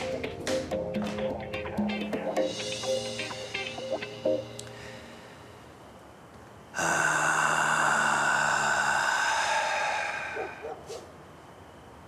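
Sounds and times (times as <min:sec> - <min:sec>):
man sighing loudly: 0:06.8 - 0:10.6.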